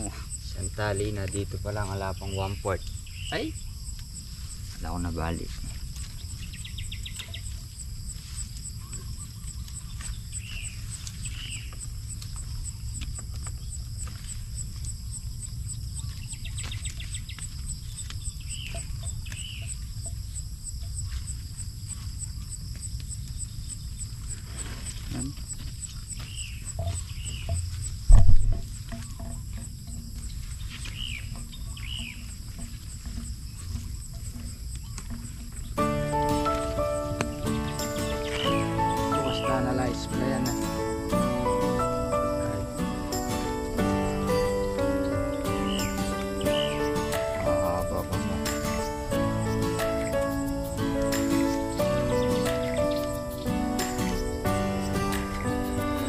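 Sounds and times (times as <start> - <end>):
bird calls: 0.0 - 56.0
insects trilling: 0.0 - 56.0
wind rumble on microphone: 26.5 - 35.8
loud low thump: 28.1 - 28.7
background music: 35.8 - 56.0.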